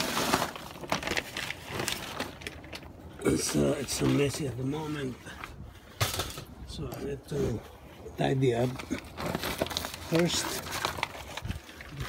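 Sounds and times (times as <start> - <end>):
sharp plastic crackles: 0.0 - 4.7, 8.5 - 12.0
plastic sheet rustling: 0.0 - 6.7, 8.2 - 12.0.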